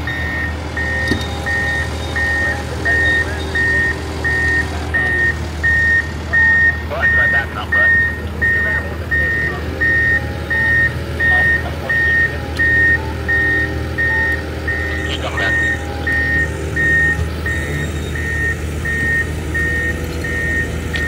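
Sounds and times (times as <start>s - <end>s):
backup alarm beeping: 0.0s - 21.0s
diesel engine droning: 0.0s - 21.0s.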